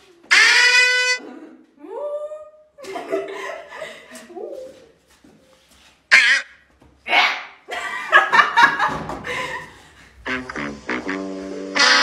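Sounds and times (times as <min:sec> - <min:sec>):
noisy animal call: 0:00.3 - 0:01.2, 0:06.1 - 0:06.6
animal call with wavering pitch: 0:06.1 - 0:06.4.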